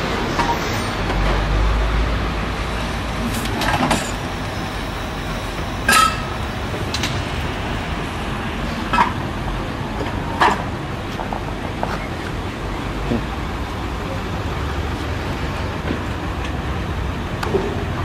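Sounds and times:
street traffic noise: 0:00.0 - 0:18.0.

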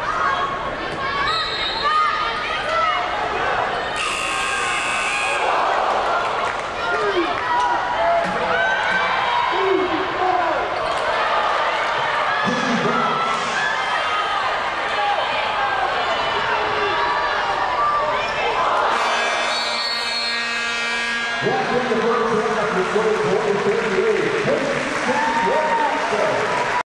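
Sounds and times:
crowd voices: 0:00.0 - 0:26.8
low buzzing arena horn: 0:03.9 - 0:05.6, 0:18.8 - 0:25.1.

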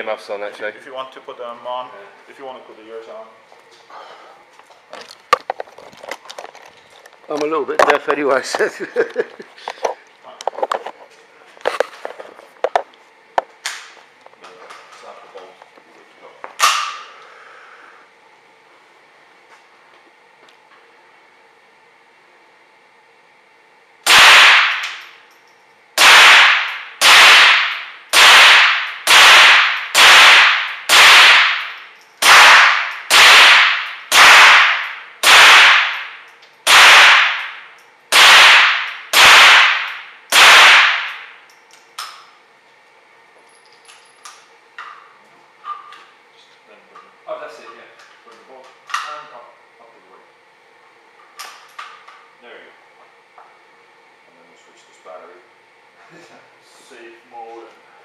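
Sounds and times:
rifle shots with echo: 0:24.1 - 0:24.9, 0:26.0 - 0:41.3.

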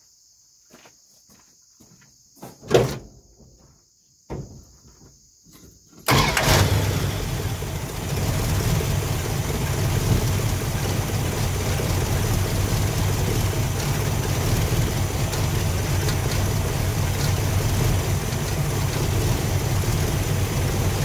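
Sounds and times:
engine starting and idling rough: 0:06.0 - 0:21.0.

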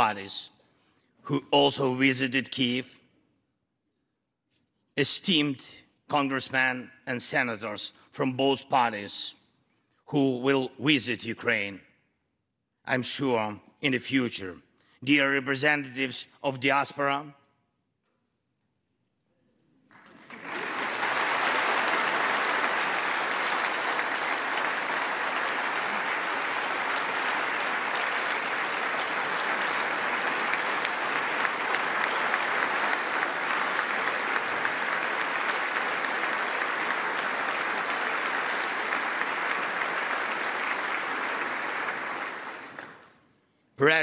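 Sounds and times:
audience applauding: 0:19.9 - 0:43.2.

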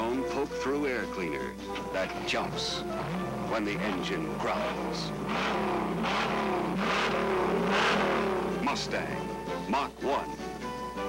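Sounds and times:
car engine revving: 0:01.7 - 0:10.1.

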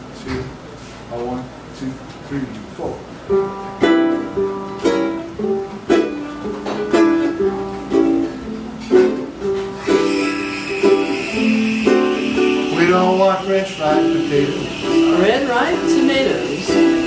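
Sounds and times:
ukuleles playing: 0:03.3 - 0:17.0.

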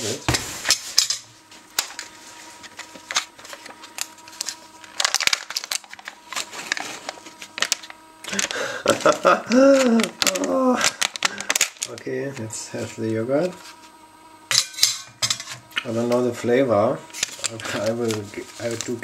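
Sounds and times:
person speaking: 0:08.3 - 0:13.6, 0:15.8 - 0:19.0.

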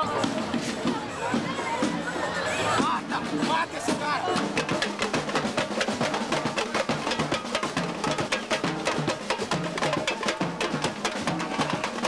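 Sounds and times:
samba drums playing fast beat: 0:00.0 - 0:12.0
voices singing or shouting: 0:00.0 - 0:12.0.

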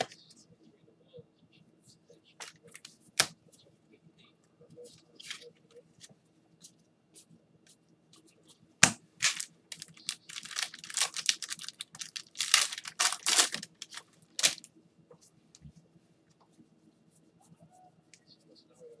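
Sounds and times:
cards being handled: 0:05.2 - 0:06.1, 0:09.2 - 0:14.7
wrapper tearing and crinkling: 0:09.2 - 0:14.7.

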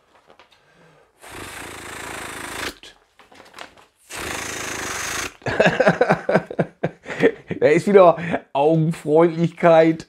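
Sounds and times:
paper rustling and scraping: 0:00.0 - 0:00.6, 0:02.9 - 0:04.0.

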